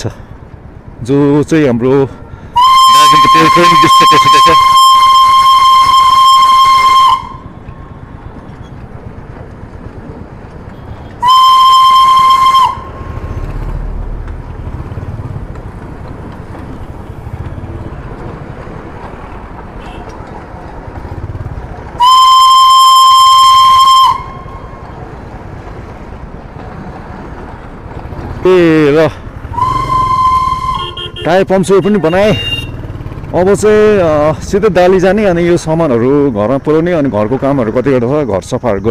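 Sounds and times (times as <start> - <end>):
street traffic: 0.0 - 38.9
steam whistle blasts: 2.6 - 7.5, 11.2 - 13.2, 22.0 - 24.6, 29.5 - 31.3
motorcycle engine: 7.1 - 35.0.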